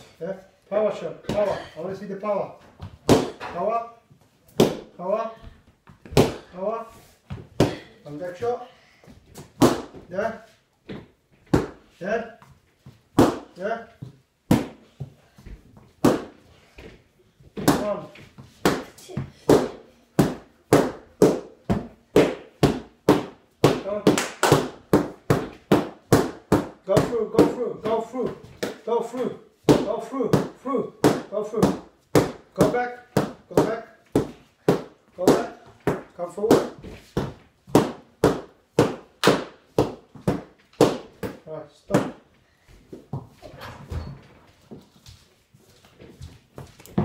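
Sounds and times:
sticks striking training pads: 3.0s - 3.7s, 4.5s - 4.9s, 9.6s - 10.0s, 13.2s - 13.6s, 14.5s - 14.9s, 16.0s - 16.4s, 17.6s - 28.9s, 29.7s - 42.2s.

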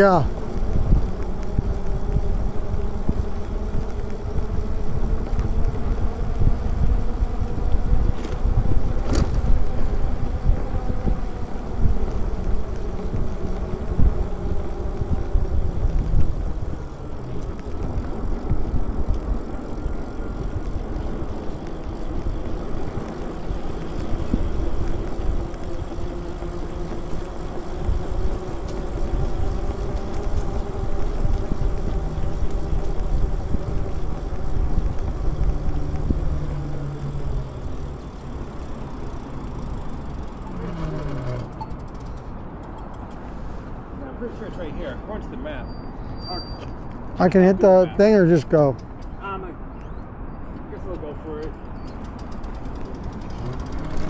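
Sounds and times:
faint motor hum: 0.0s - 40.2s
wind buffeting microphone: 0.0s - 44.0s
e-bike road rumble: 0.0s - 54.0s.

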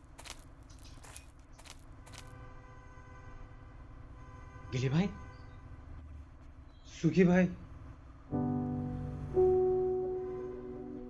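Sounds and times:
footsteps crunching on debris: 0.0s - 2.3s.

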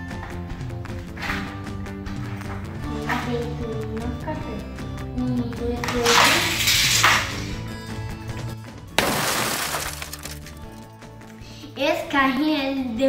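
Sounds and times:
background music: 0.0s - 13.0s
loud shattering crashes: 9.0s - 10.6s.

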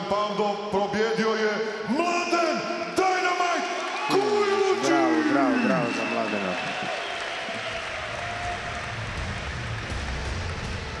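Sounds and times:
crowd applauding: 3.7s - 11.0s.

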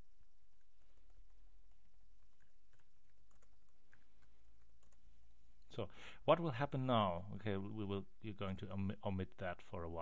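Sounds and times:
low steady hum: 0.0s - 10.0s
computer keyboard keystrokes: 2.2s - 5.0s.

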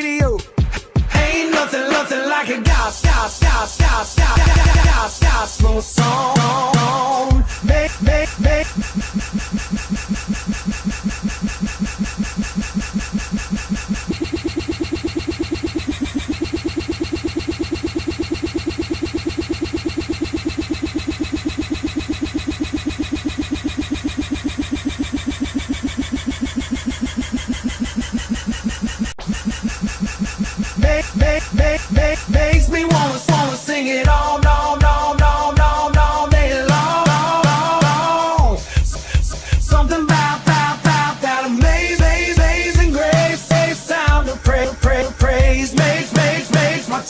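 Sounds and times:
looped song stutter: 0.0s - 47.0s.

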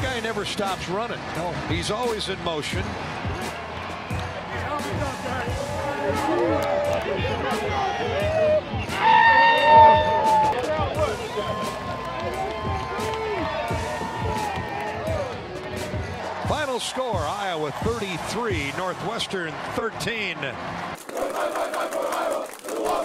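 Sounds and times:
music: 0.0s - 23.0s
players shouting and chattering: 0.0s - 23.0s
loud drawn-out yell: 5.7s - 10.6s.

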